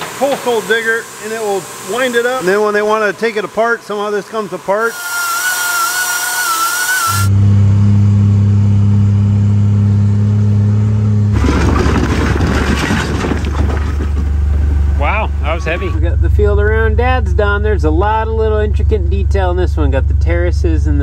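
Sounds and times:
power tool cutting metal: 0.0s - 7.4s
utility vehicle engine running: 6.6s - 21.0s.

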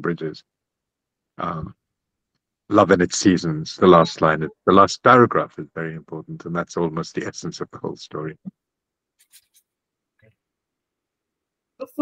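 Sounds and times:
faint voice: 0.0s - 0.4s, 1.4s - 1.7s, 2.7s - 8.4s.

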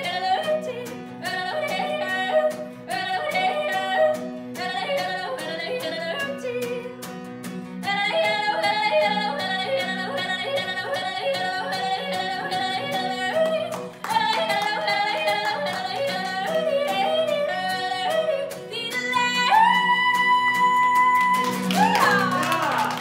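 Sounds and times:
acoustic guitar strumming: 0.0s - 23.0s
woman yodeling: 8.1s - 23.0s.

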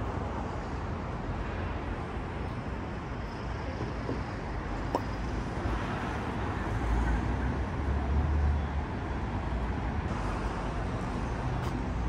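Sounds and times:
traffic noise: 0.0s - 12.0s.

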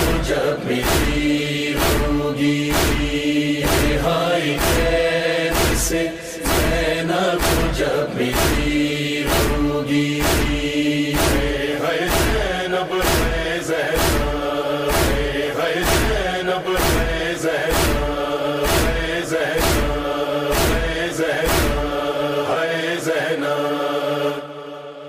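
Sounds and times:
man chanting: 0.0s - 3.0s, 3.6s - 14.3s
chest-beating thumps: 0.0s - 22.2s
sustained vocal drone: 0.0s - 25.0s.

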